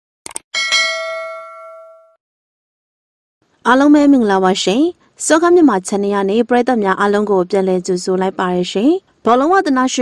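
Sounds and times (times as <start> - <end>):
notification bell ding: 0.6 - 2.2.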